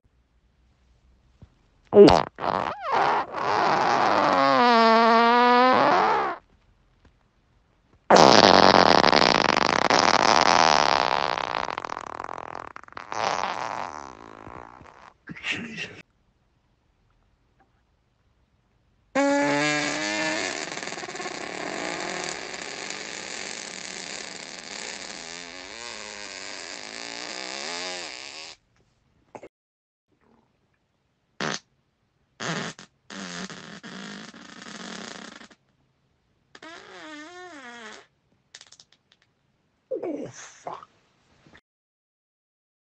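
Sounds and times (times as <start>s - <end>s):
person farting: 2.0s - 6.5s, 8.1s - 15.2s, 19.2s - 28.6s, 31.4s - 31.7s, 32.4s - 35.6s, 36.5s - 39.3s.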